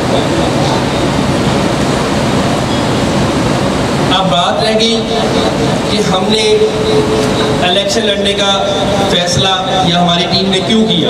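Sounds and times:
rushing hall room noise: 0:00.0 - 0:11.0.

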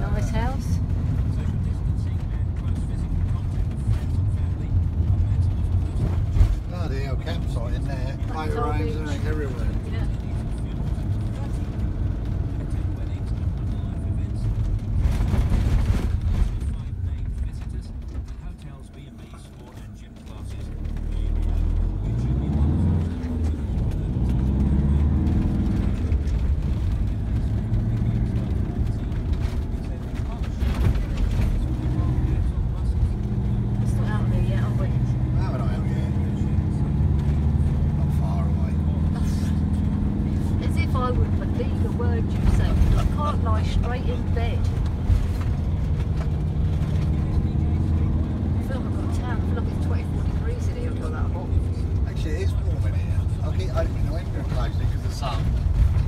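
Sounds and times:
car engine from inside cabin: 0:00.0 - 0:56.0
road noise: 0:00.0 - 0:56.0.

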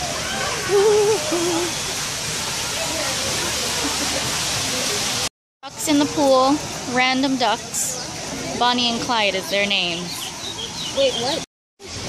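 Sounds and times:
falling water rushing: 0:00.0 - 0:12.0.

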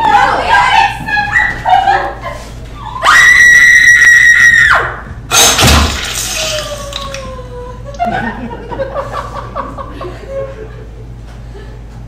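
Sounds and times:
excited voices: 0:00.0 - 0:05.0, 0:06.2 - 0:08.3.

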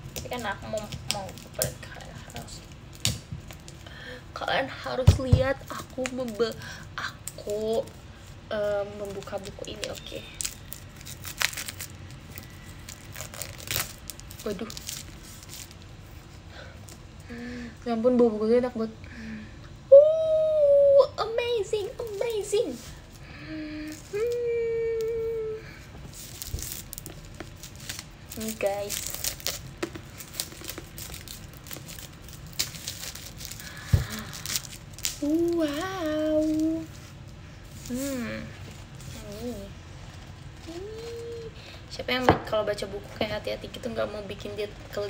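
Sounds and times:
plastic shrink-wrap tearing: 0:00.1 - 0:03.8, 0:05.6 - 0:15.9, 0:26.1 - 0:41.5
plastic bag crinkling: 0:05.6 - 0:16.0, 0:26.1 - 0:41.5.

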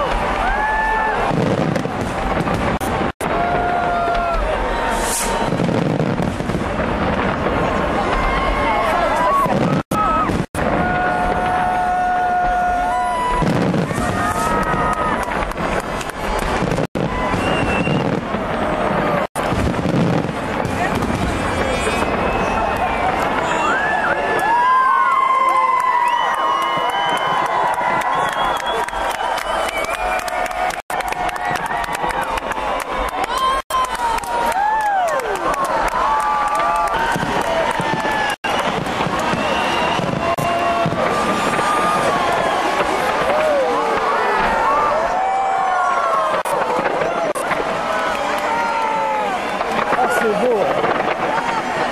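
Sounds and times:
crowd voices: 0:00.0 - 0:51.9
fireworks bangs and crackling: 0:00.0 - 0:51.9.

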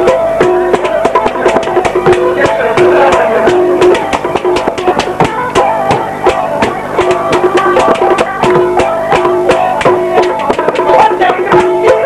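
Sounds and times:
fast drum beat: 0:00.0 - 0:12.0
instrumental folk melody: 0:00.0 - 0:12.0.

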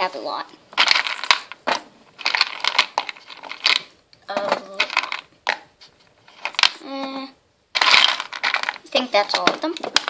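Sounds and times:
plastic figures clattering: 0:00.7 - 0:06.8, 0:07.7 - 0:10.0.

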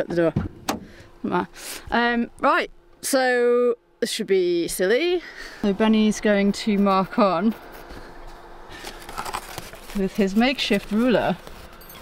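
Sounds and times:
paper and pen rustling: 0:08.7 - 0:12.0.

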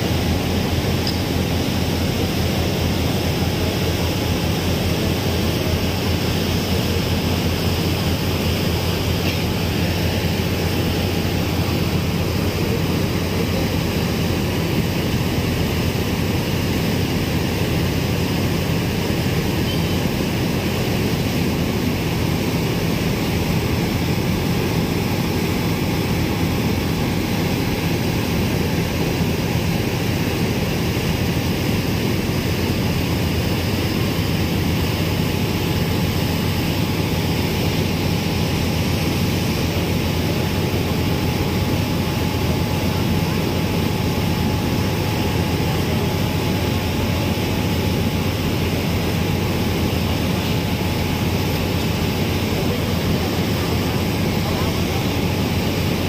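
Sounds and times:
ferry engines droning: 0:00.0 - 0:56.0
water rushing from wake: 0:00.0 - 0:56.0.

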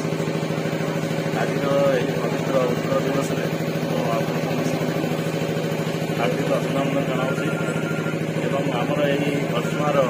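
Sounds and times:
steady engine-like hum: 0:00.0 - 0:10.0
man talking: 0:06.2 - 0:07.8.

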